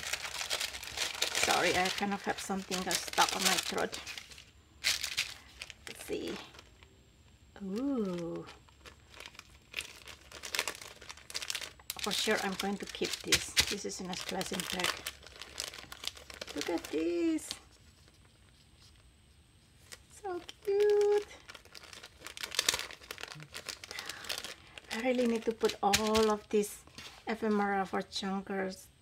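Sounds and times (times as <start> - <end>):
plastic bag crinkling: 0.0 - 6.9, 7.6 - 19.0, 19.8 - 27.6.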